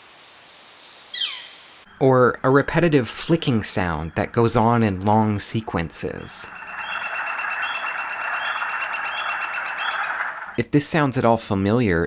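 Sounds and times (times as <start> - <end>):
northern flicker rapid call series: 1.1 - 11.0.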